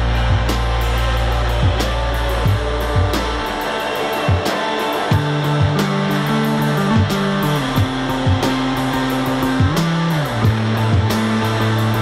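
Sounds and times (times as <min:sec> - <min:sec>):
bass guitar: 0:00.0 - 0:12.0
electric guitar: 0:00.0 - 0:12.0
hi-hat ticks: 0:00.0 - 0:12.0.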